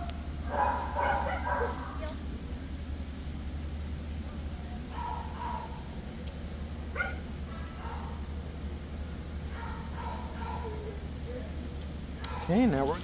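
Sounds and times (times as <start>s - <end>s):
steady low hum: 0.0s - 13.0s
dog yipping and barking: 0.5s - 2.1s, 4.9s - 6.0s, 6.9s - 8.2s, 9.4s - 11.0s, 12.2s - 12.6s.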